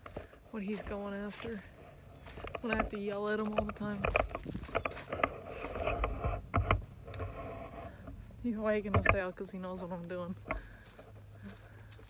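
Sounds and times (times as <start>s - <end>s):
footsteps crunching on gravel: 0.0s - 6.9s, 8.5s - 12.0s
rustling leaves: 0.0s - 12.0s.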